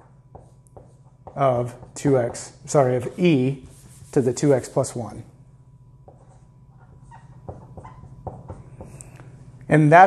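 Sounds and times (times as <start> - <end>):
marker squeaking on whiteboard: 6.1 - 9.0
marker tap: 7.5 - 9.0.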